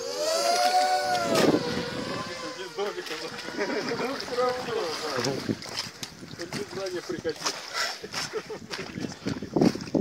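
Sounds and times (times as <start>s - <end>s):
drone propellers whining: 0.0s - 5.5s.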